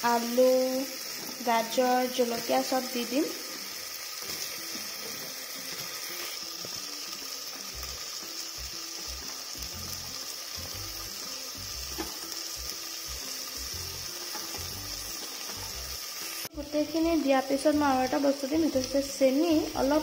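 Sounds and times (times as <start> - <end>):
masala sizzling in a pot: 0.0 - 20.0.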